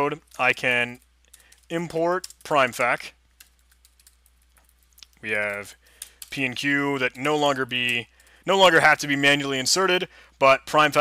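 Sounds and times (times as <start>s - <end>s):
computer keyboard typing: 0.2s - 8.8s.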